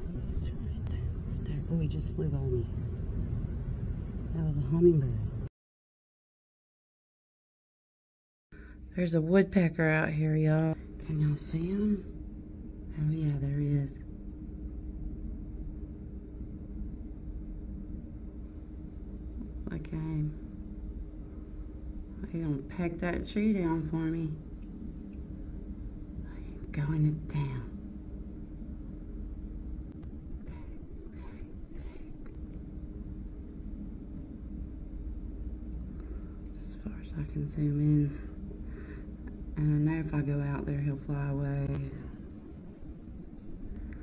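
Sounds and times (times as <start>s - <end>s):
faint constant tone: 0.0s - 5.5s, 8.6s - 44.0s
low background hum and rumble: 0.0s - 5.5s, 8.5s - 44.0s.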